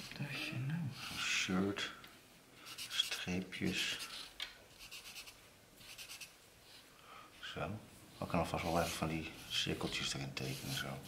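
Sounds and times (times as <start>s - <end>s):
marker scratching on paper: 2.7s - 3.2s, 3.8s - 6.8s, 8.3s - 11.0s.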